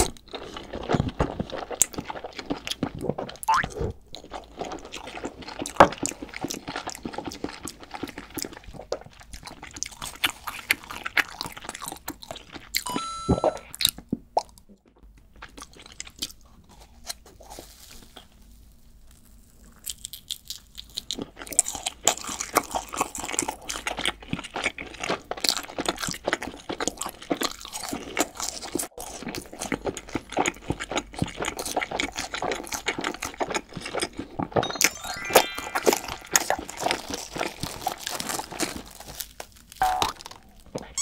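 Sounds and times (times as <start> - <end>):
crisp biting and chewing: 0.0 - 12.9, 13.6 - 41.0.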